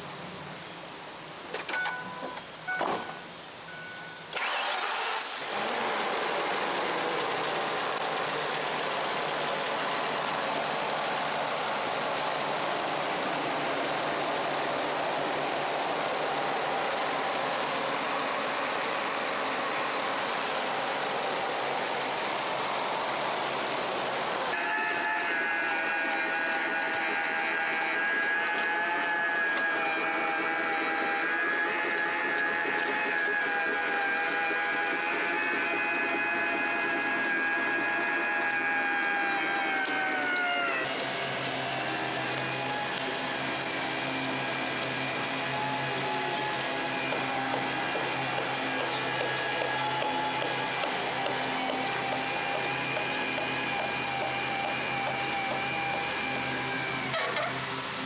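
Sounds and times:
several held tones: 1.7s - 4.5s
engine starting and idling: 4.2s - 24.6s, 39.4s - 58.0s.

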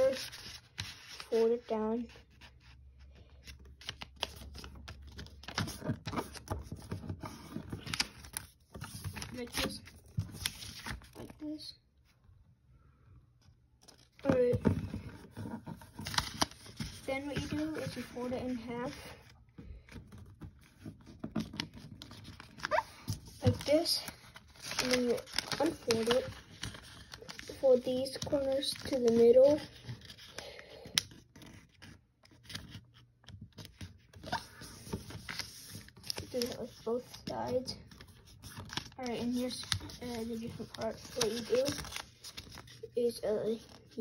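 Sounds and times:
paper rustling and crinkling: 0.0s - 11.6s, 13.4s - 44.0s.

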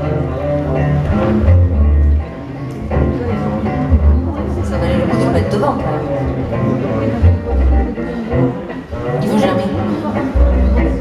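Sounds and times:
bowed double bass low notes: 0.0s - 11.0s
jazz band instruments: 0.0s - 11.0s.

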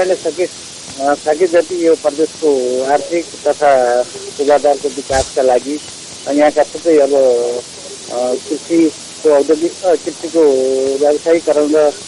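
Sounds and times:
person speaking: 0.0s - 12.0s
steady background hiss: 0.0s - 12.0s.

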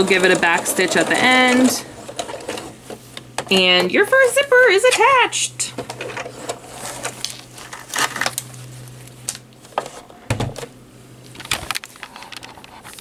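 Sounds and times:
sewing machine hum: 0.0s - 2.9s.

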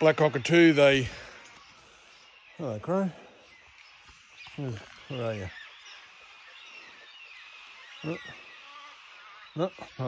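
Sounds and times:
high insect hum: 0.0s - 10.0s
small birds chirping: 0.0s - 10.0s
downward-sliding bird calls: 3.4s - 10.0s.

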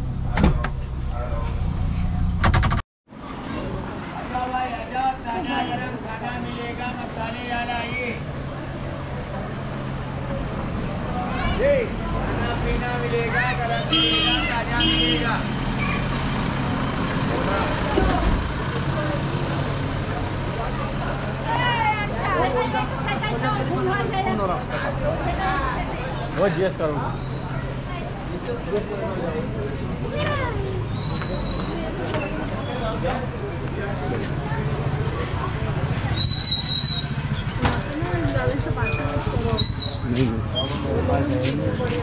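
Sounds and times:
voices of passers-by: 3.1s - 42.0s.

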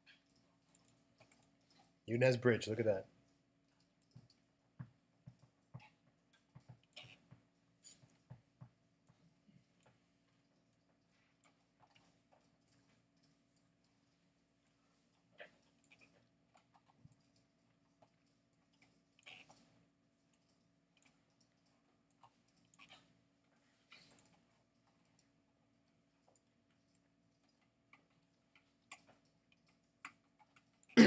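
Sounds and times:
faint room hum: 0.0s - 31.0s.

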